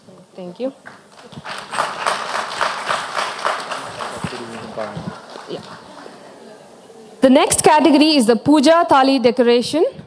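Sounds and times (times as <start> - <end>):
audience applauding: 1.1 - 6.6.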